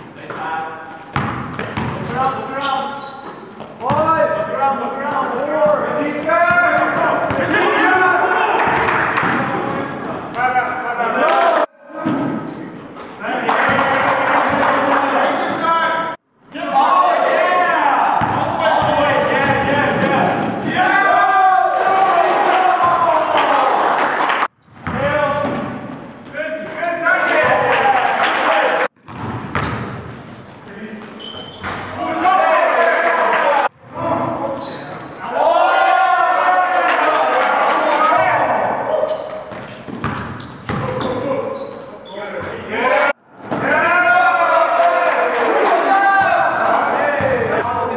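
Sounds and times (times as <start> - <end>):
sneaker squeaks: 0.0 - 4.4, 5.1 - 7.4, 9.1 - 11.4, 12.3 - 13.2, 15.5 - 17.4, 24.5 - 27.0, 29.0 - 32.0, 34.5 - 35.4, 38.4 - 42.7
players calling out: 0.3 - 28.9
basketball bouncing on court: 1.0 - 2.2, 3.6 - 4.2, 18.2 - 20.7, 24.6 - 26.0, 29.0 - 30.3, 39.5 - 41.2
basketball bouncing on hardwood floor: 3.9 - 4.1.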